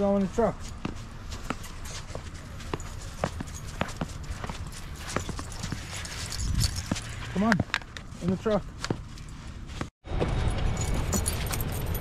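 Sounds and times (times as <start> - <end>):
footsteps crunching on icy snow: 0.3 - 9.9.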